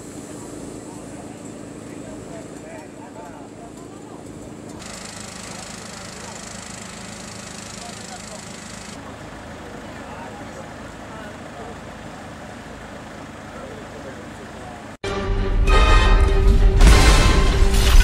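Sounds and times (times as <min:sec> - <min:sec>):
distant indistinct voices: 0:00.0 - 0:15.0
vehicle engine running: 0:00.0 - 0:15.0.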